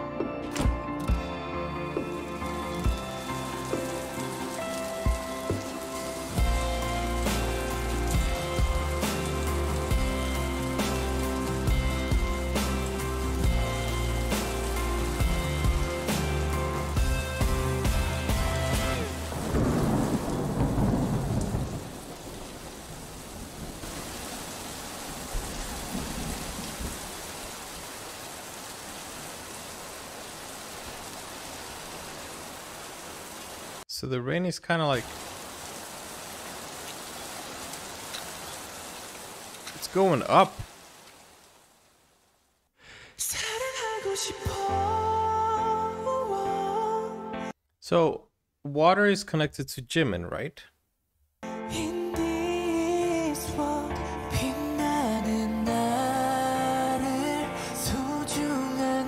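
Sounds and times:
heavy rain: 1.8 - 33.8, 35.0 - 42.5.

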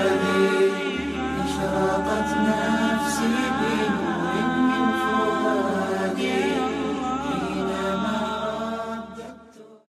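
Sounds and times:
layered voices chanting a cappella: 0.0 - 9.9.

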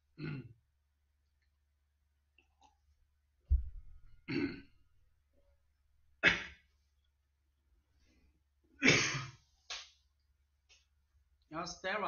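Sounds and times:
man clearing his throat: 0.2 - 0.6, 4.2 - 4.8, 6.2 - 6.6, 8.8 - 9.4
heavy low thump: 3.5 - 4.1.

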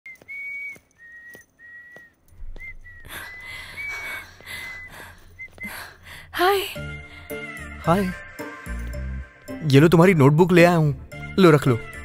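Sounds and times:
person whistling a tune: 0.1 - 5.9.

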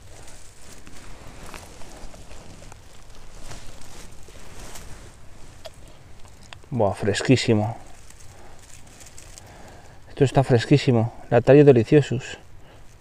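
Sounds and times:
pine needles rustling and crackling: 0.0 - 13.0.

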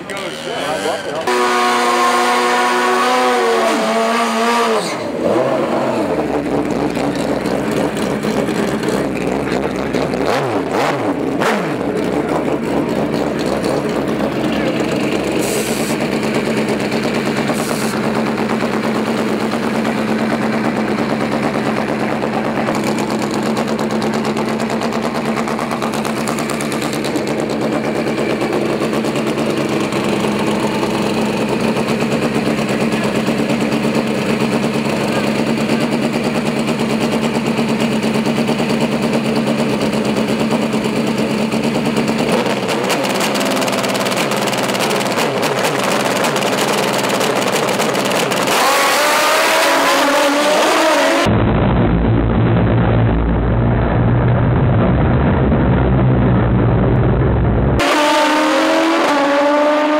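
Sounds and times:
motorcycle engines revving: 0.0 - 51.4, 57.2 - 59.9.

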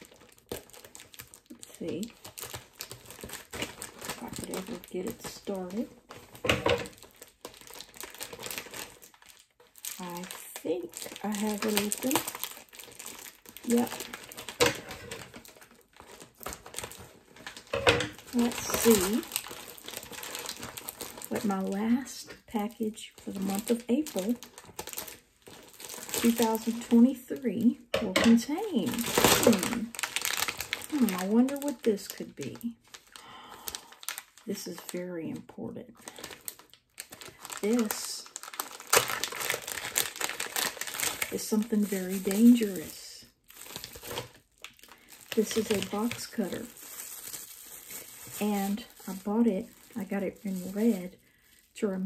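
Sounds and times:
plastic wrapping crinkling: 0.0 - 52.0.

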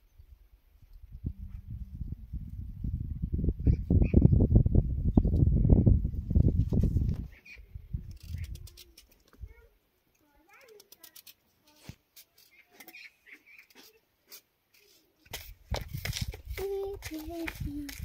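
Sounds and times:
wind buffeting microphone: 0.8 - 8.7, 15.3 - 18.0.

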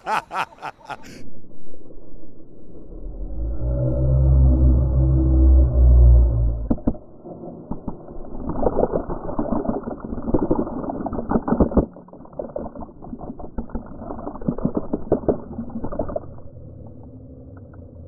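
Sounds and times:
deep rumble: 1.0 - 9.3, 15.4 - 18.0
water pouring: 6.7 - 17.9.

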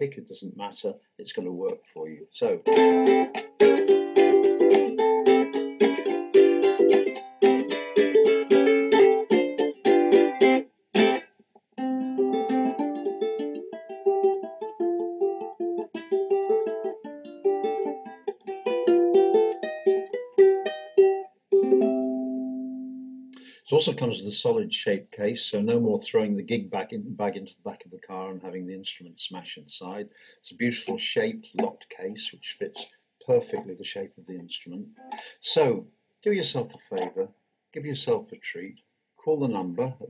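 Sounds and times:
ukulele fingerpicked: 2.5 - 23.4, 30.8 - 35.3, 36.6 - 37.2
ukulele strummed: 2.5 - 23.4, 30.7 - 35.3, 36.5 - 37.2.

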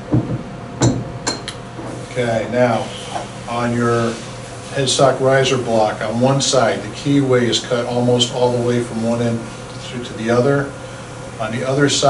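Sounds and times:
dull knock on wooden table: 0.1 - 1.1.

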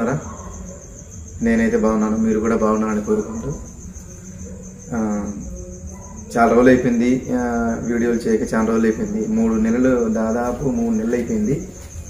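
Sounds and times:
man speaking: 1.4 - 3.7, 6.3 - 11.8.

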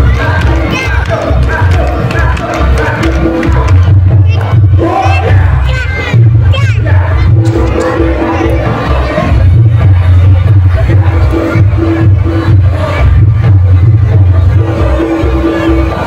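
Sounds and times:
crowd noise: 0.0 - 16.0
loud live dance music: 0.0 - 16.0
voices shouting cries: 4.1 - 9.4.

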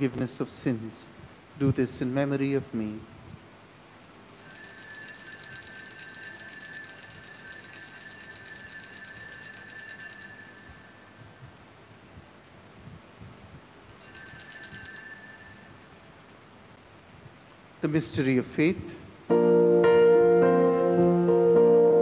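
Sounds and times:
altar bells jingling: 4.3 - 11.2, 13.9 - 16.1.

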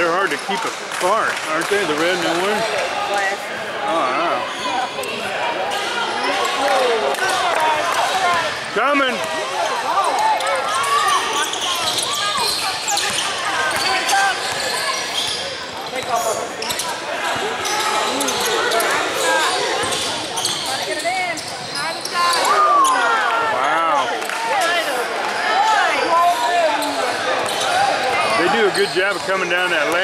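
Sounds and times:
voices: 0.0 - 30.0.

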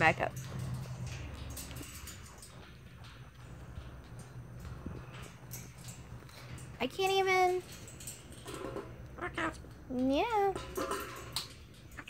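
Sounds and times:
birds tapping on metal cage bars: 0.0 - 12.0
low steady rumble: 0.0 - 12.0.

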